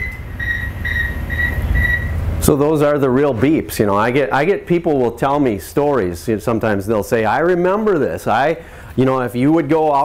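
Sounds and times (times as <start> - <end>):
short high radio beeps: 0.0 - 2.2
low steady rumble: 0.0 - 10.0.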